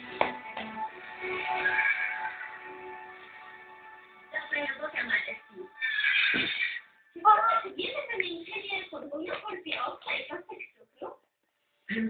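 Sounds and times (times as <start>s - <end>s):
television background music: 0.0s - 12.0s
voices from television show: 0.1s - 12.0s.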